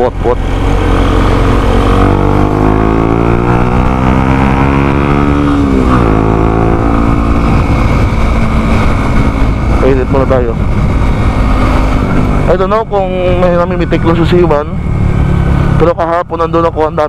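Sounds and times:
wind rumble on microphone: 0:00.0 - 0:15.8
motorcycle engine accelerating: 0:00.0 - 0:16.8.

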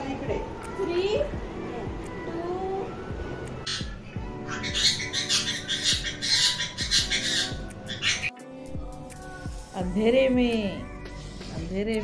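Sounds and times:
parrot squawking: 0:03.6 - 0:08.4.

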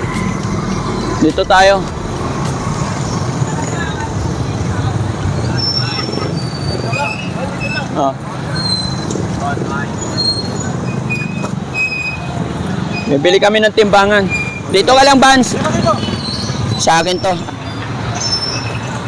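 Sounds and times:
low hum: 0:00.0 - 0:04.4
motorcycle engines running: 0:00.0 - 0:19.0
street traffic: 0:00.0 - 0:19.0.

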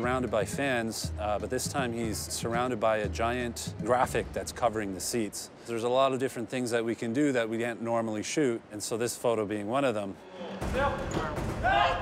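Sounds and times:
indistinct voices in a large room: 0:00.0 - 0:12.0.

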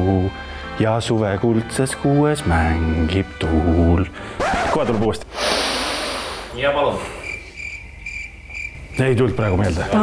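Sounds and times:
cricket chirping: 0:05.9 - 0:10.0.

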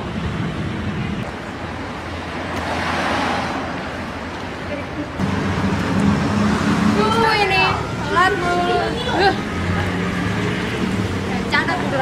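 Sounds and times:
road traffic hiss and hum: 0:00.0 - 0:12.0.

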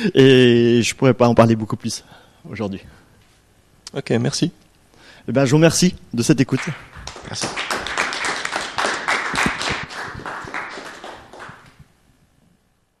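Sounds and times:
audience applauding: 0:06.5 - 0:11.8.

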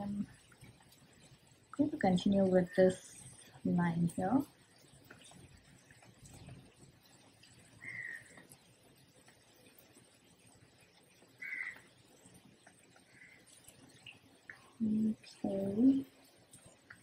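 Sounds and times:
bird calling: 0:07.8 - 0:08.4, 0:11.4 - 0:11.9.

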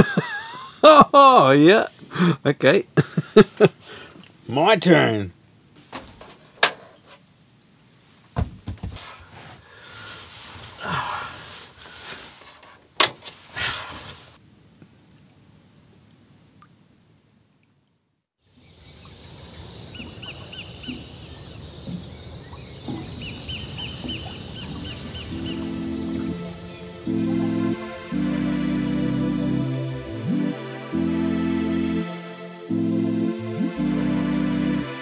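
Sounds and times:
outdoor background noise: 0:00.0 - 0:30.6
bedding and clothes rustling: 0:05.8 - 0:07.3, 0:07.9 - 0:14.4
bird chirping: 0:18.5 - 0:28.2.

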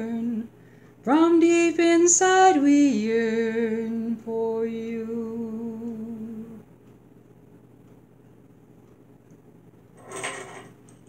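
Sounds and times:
woman singing a long low note: 0:00.0 - 0:00.5, 0:01.1 - 0:06.6.

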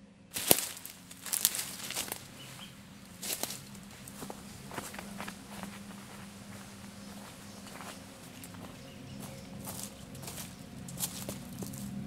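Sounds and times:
footsteps crunching through leaves: 0:00.3 - 0:12.0.

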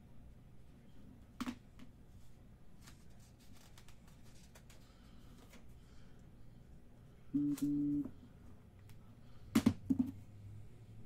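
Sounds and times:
short electronic beeps: 0:07.4 - 0:08.1.

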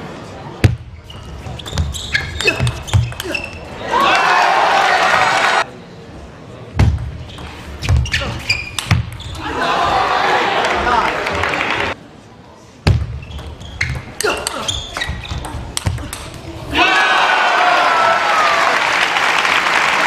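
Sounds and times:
crowd cheering and applause: 0:03.8 - 0:05.7, 0:09.4 - 0:12.0, 0:16.8 - 0:20.0
table tennis ball hits: 0:08.7 - 0:09.2.

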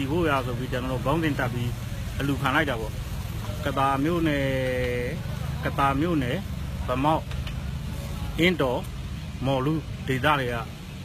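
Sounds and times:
man speaking: 0:00.0 - 0:07.3, 0:08.3 - 0:10.8
street traffic rumble: 0:00.0 - 0:11.0.

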